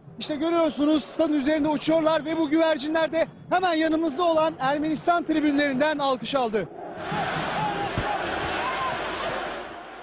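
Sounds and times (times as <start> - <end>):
faint crowd chanting: 6.7 - 10.0
stadium crowd cheering: 6.7 - 10.0.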